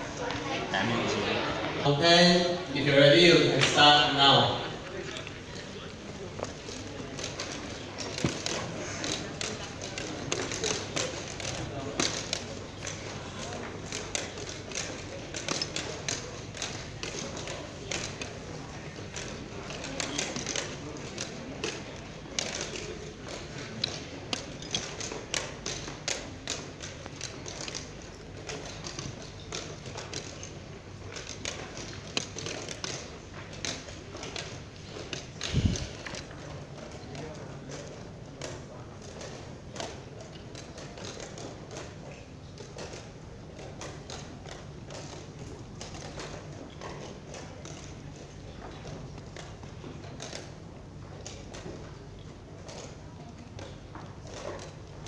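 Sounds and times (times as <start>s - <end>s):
murmur of a large hall: 0.0s - 55.0s
room noise: 0.0s - 55.0s.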